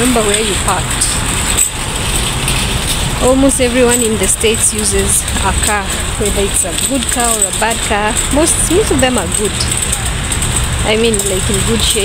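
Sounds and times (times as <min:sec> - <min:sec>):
shopping cart rolling on asphalt: 0:00.0 - 0:12.0.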